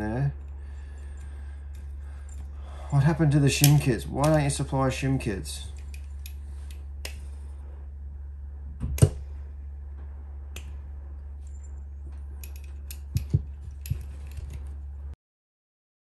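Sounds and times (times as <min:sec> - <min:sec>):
low hum: 0:00.0 - 0:15.2
metal parts clicking: 0:00.4 - 0:04.6, 0:05.6 - 0:07.2, 0:11.4 - 0:14.8.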